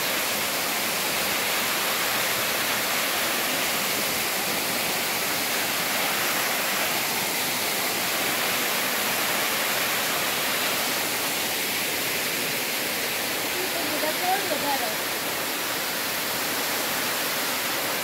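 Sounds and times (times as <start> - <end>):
waterfall rushing: 0.0 - 18.0.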